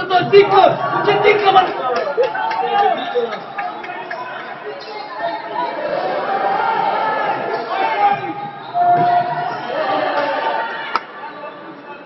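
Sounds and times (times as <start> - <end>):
spectators chattering indoors: 0.0 - 12.0.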